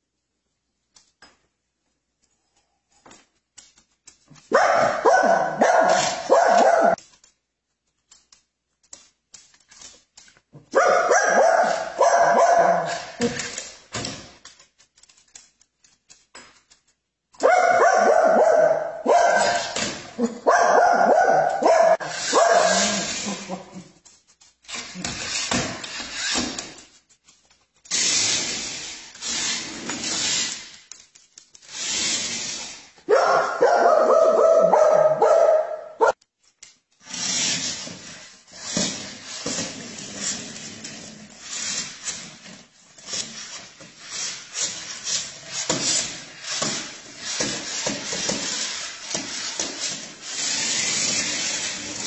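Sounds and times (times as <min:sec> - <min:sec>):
dog barking: 0:04.5 - 0:07.0, 0:10.7 - 0:13.2, 0:17.4 - 0:23.1, 0:33.1 - 0:36.2.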